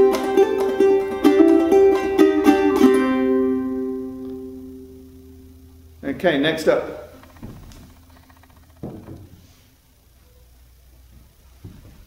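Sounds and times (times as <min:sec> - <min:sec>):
soft thumps: 0:07.0 - 0:09.6.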